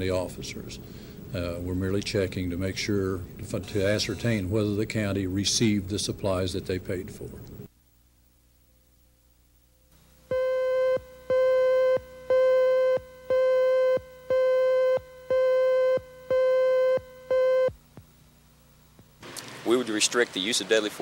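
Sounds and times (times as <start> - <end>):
electronic countdown beeps: 10.3 - 17.8.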